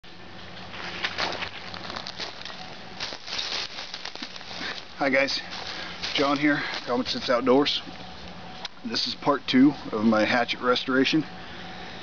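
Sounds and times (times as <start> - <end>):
footsteps crunching dry leaves: 0.7 - 8.3.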